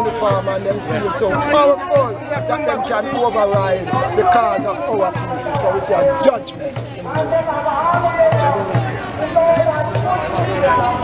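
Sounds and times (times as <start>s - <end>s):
hand drums beating: 0.0s - 11.0s
voices singing: 0.0s - 11.0s.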